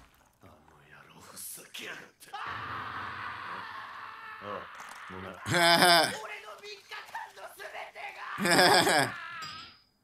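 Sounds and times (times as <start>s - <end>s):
quiet whispered dialogue: 0.4s - 2.4s.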